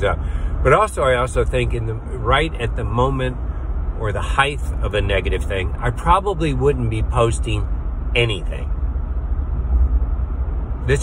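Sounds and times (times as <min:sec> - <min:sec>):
car interior road and engine rumble: 0:00.0 - 0:11.0.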